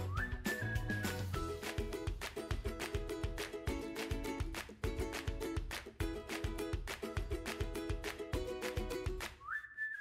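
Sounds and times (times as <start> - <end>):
background music with steady beat: 0.0 - 9.4
whistled note sliding up: 9.4 - 10.0.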